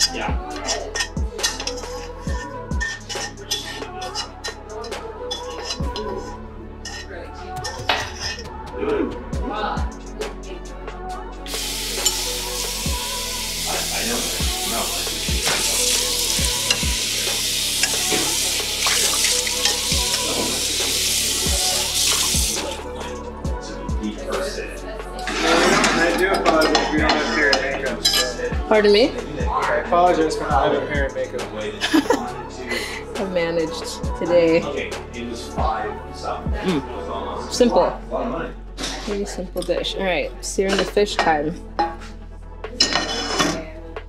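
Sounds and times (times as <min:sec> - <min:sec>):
metal pots and pans clinking: 0:25.3 - 0:28.4, 0:42.8 - 0:43.7.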